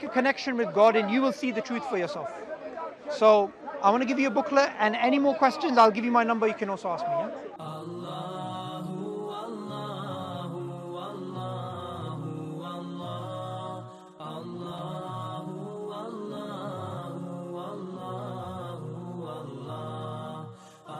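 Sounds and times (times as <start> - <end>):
chanted vocal music: 7.6 - 20.9.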